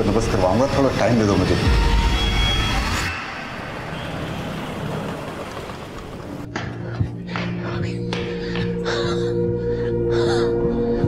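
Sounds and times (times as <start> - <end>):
city road traffic: 0.0 - 8.3.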